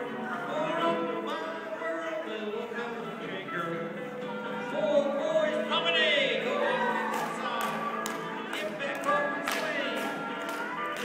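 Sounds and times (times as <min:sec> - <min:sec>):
country dance music: 0:00.0 - 0:11.0.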